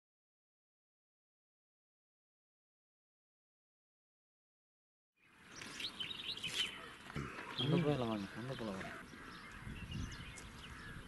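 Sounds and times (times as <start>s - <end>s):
faint bird chirps: 5.2s - 11.0s
outdoor ambience: 5.2s - 11.0s.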